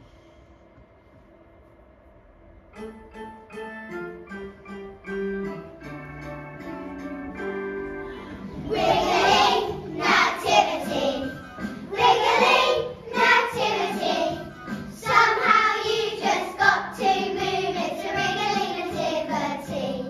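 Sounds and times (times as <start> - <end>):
children singing together: 8.5 - 20.0.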